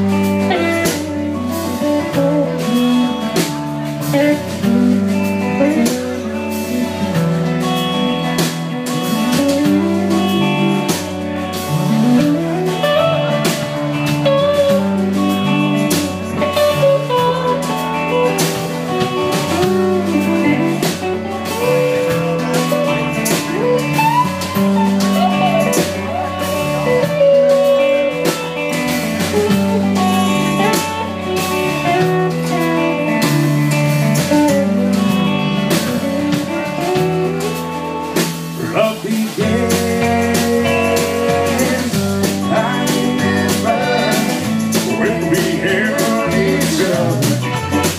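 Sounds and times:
bass guitar: 0.0 - 47.9
drums: 0.0 - 47.9
lead guitar bending notes: 0.0 - 47.9.

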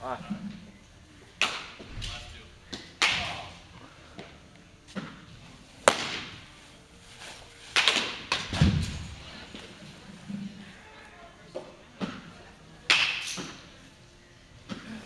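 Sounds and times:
baseball smacking into mitt: 5.8 - 6.4, 7.7 - 9.0.

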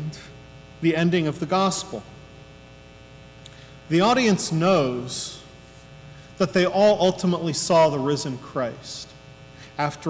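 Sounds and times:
man speaking: 0.0 - 2.2, 3.9 - 5.5, 6.4 - 9.1, 9.8 - 10.0
electrical mains hum: 0.0 - 10.0.

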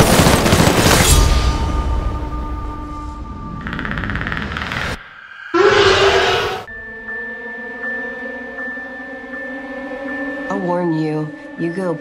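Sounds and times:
soft trailer music with high note: 1.1 - 4.1
creature roar: 5.5 - 6.7.

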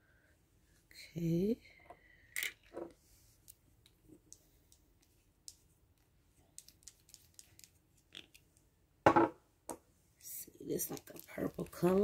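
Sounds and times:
small bottle and cap clicking: 6.6 - 8.4
knocks on wooden table: 9.1 - 9.4.

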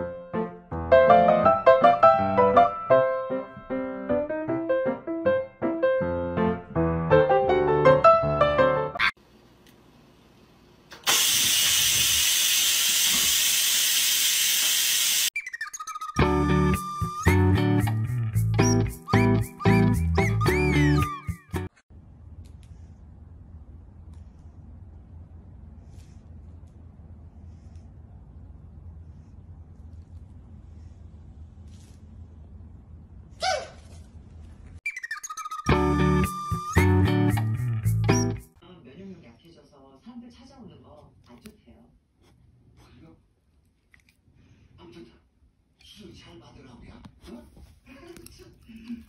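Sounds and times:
music: 0.0 - 9.0, 15.4 - 21.8, 34.9 - 38.6
steam hissing from rice cooker valve: 11.0 - 15.3
low background hum: 21.9 - 34.8
puppy yapping: 33.4 - 33.9.

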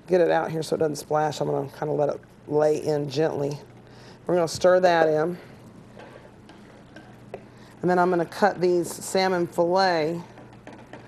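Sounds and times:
spatula stirring stew in pot: 3.2 - 11.0.

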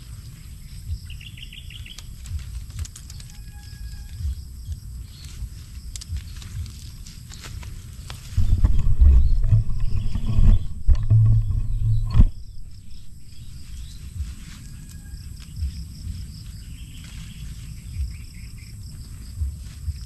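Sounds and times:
low rumbling on microphone: 0.0 - 20.0
rustling of vines: 0.0 - 20.0
small snaps of vines: 1.6 - 8.4.

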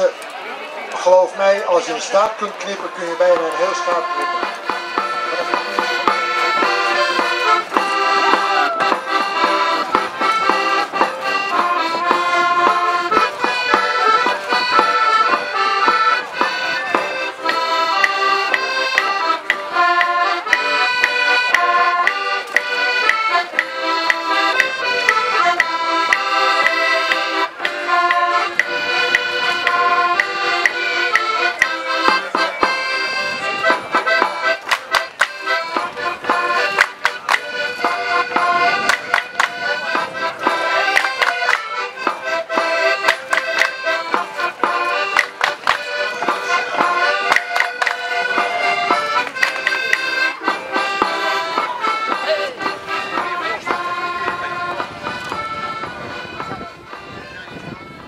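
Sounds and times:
accordion folk-dance tune: 0.0 - 58.0.

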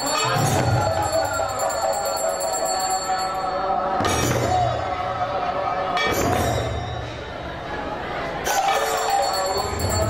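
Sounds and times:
ringing bells: 0.0 - 4.6, 8.6 - 10.0.

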